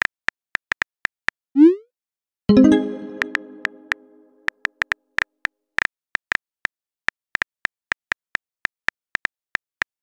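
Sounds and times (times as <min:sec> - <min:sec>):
plucked musical notes: 0:02.5 - 0:04.4.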